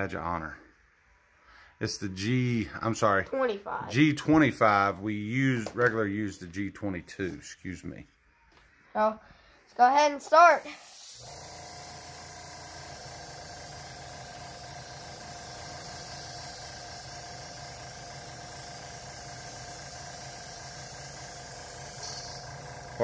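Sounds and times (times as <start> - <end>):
airbrush spraying hiss: 10.3 - 23.0
compressor humming: 10.6 - 23.0.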